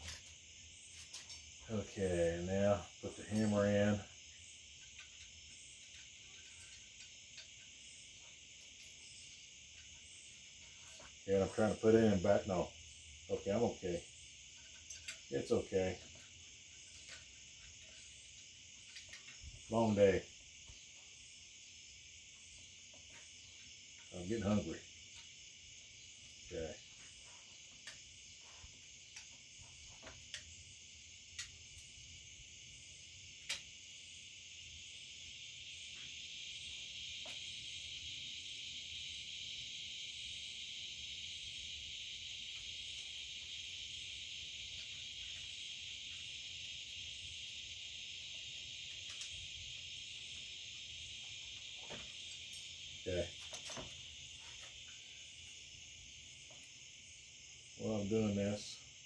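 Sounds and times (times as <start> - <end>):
night insects chirring: 0.0 - 59.0
metallic clicks of rifle parts: 14.6 - 15.3, 16.0 - 19.5.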